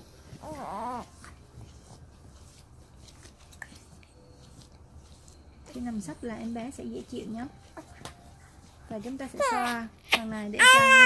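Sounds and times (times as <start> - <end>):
newborn baby whimpering: 0.4 - 1.2, 9.3 - 11.0.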